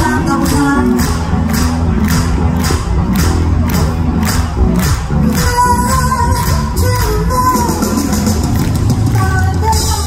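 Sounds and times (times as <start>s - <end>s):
crowd cheering and shouting: 0.0s - 10.0s
rock band playing live: 0.0s - 10.0s
steady drum beat: 0.0s - 10.0s.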